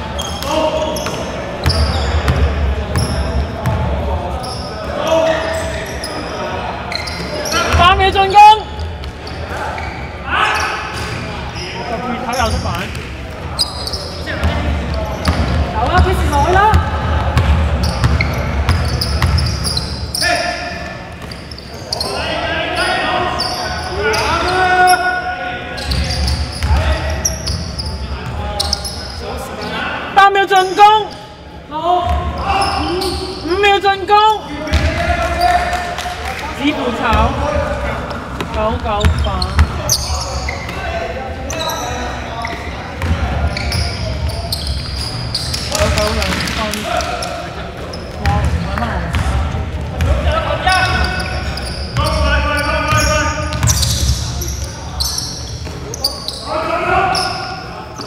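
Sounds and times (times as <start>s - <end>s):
players calling out: 0.0s - 58.0s
ball bouncing on wooden court: 15.2s - 19.5s, 34.7s - 35.1s, 38.4s - 39.9s, 48.2s - 50.3s.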